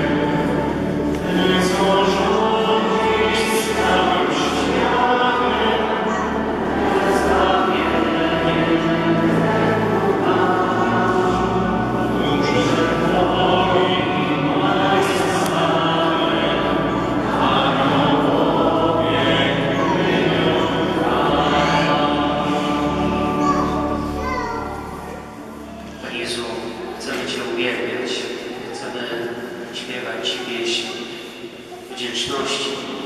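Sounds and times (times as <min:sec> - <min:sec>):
congregation singing a hymn: 0:00.0 - 0:33.0.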